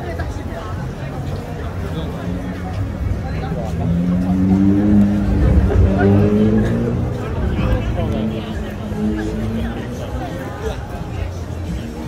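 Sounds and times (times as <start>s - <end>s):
street crowd chatter: 0.0s - 12.0s
vehicle engine running: 1.9s - 11.4s.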